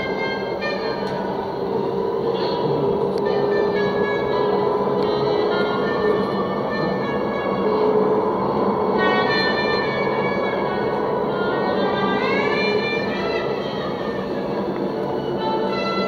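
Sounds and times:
instrumental background music: 0.0s - 16.0s
train ride rushing noise: 0.0s - 16.0s.

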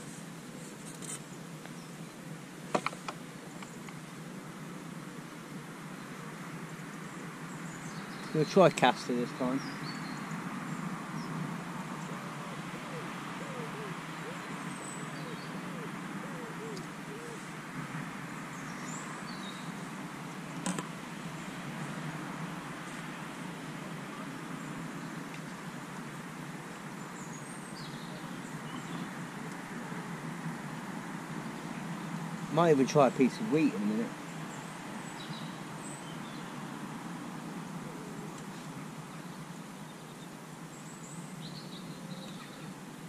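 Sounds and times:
outdoor background noise: 0.0s - 43.0s
faint bird chirps: 37.8s - 42.8s.

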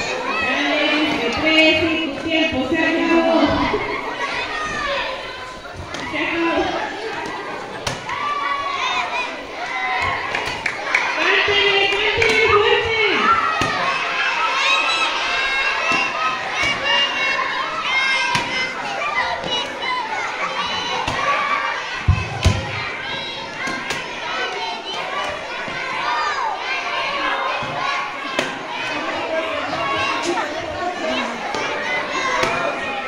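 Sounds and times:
young children shouting and chattering: 0.0s - 33.0s.

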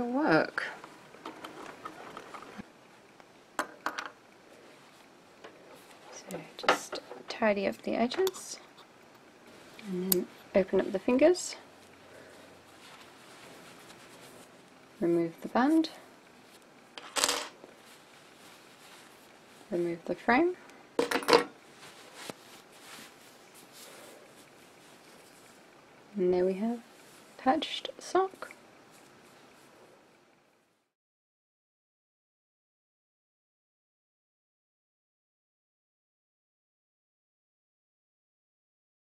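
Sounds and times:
faint handling sounds: 0.5s - 3.3s, 4.0s - 30.1s.

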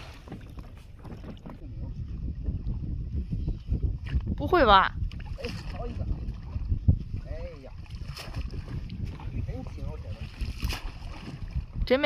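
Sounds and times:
water moving around a boat: 0.0s - 12.0s
wind rumbling on microphone: 0.0s - 12.0s.

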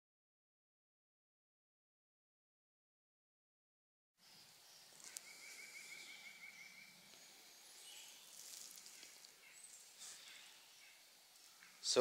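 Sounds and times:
thin high bird chirps: 4.2s - 12.0s
bird trilling: 4.3s - 12.0s.

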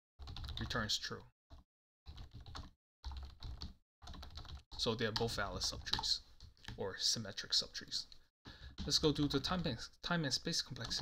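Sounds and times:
rapid typing on keyboard: 0.2s - 6.8s, 8.6s - 9.8s, 10.5s - 11.0s.

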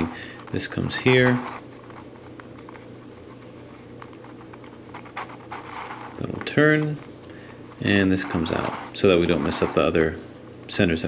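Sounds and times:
plastic puzzle clicking and rubbing: 0.0s - 9.8s.

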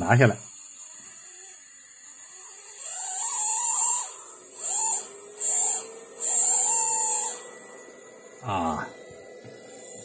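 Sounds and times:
high-pitched inverter whine: 0.0s - 10.0s.

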